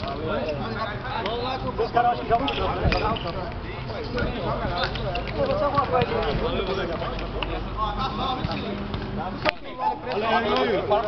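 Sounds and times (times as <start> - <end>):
men calling out and talking: 0.0 - 11.0.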